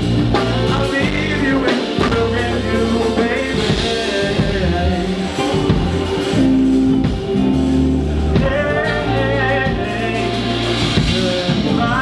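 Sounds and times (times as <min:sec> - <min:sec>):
live band music: 0:00.0 - 0:12.0
man singing into microphone: 0:00.2 - 0:12.0.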